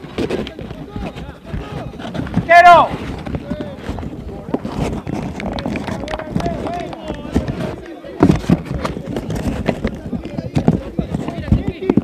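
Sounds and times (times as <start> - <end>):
players shouting: 0.6 - 3.2.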